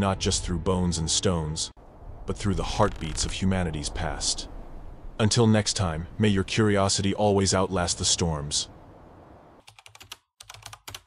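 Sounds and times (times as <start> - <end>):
computer keyboard typing: 9.6 - 11.0.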